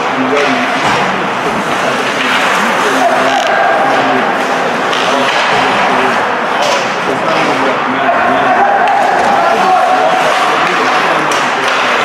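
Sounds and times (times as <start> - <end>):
faint voices and calls: 0.0 - 12.0.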